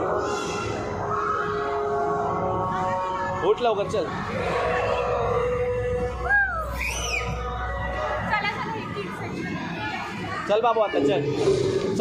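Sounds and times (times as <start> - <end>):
background crowd noise: 0.0 - 12.0.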